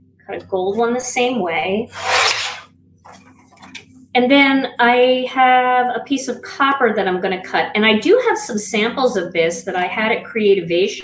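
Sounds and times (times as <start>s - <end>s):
paper trimmer blade slicing cardstock: 2.0s - 2.6s.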